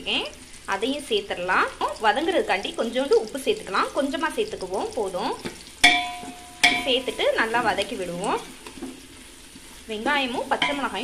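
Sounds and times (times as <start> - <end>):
onions frying in a pot: 0.0 - 11.0
wooden spatula stirring: 4.6 - 11.0.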